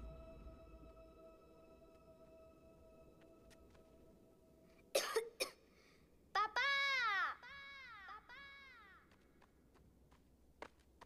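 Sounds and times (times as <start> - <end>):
cartoon character high-pitched cry: 6.4 - 8.9.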